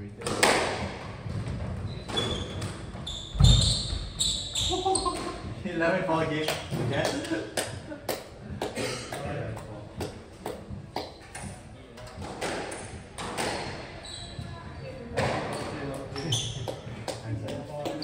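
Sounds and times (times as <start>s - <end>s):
brief high squeaks: 1.9s - 5.3s.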